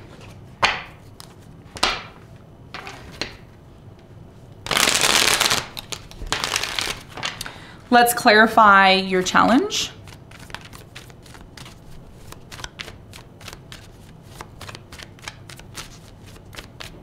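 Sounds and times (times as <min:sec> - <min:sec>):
cards rustling: 0:04.7 - 0:07.4, 0:10.0 - 0:17.0
cards being shuffled: 0:04.7 - 0:07.5, 0:10.0 - 0:17.0.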